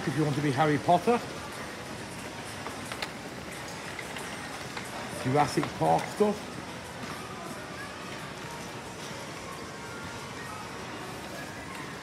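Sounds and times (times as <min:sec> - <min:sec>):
airport terminal ambient hiss: 0:00.0 - 0:12.0.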